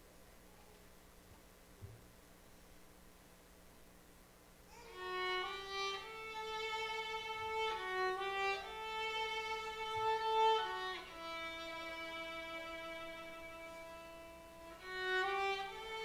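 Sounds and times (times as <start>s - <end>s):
solo violin slow melody: 4.7s - 16.0s.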